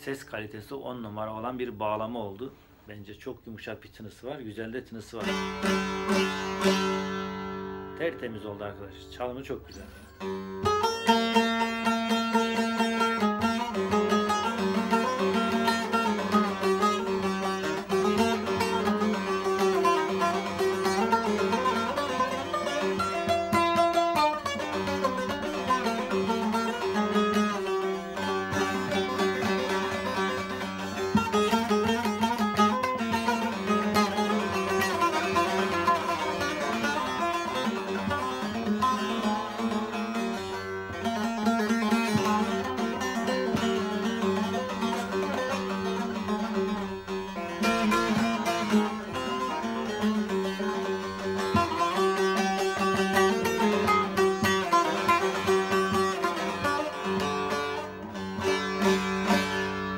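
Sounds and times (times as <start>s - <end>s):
plucked lute melody: 3.6s - 59.9s.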